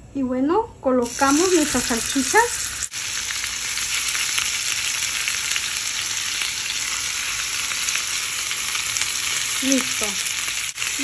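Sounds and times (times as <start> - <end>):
food sizzling in a frying pan: 1.0 - 11.0.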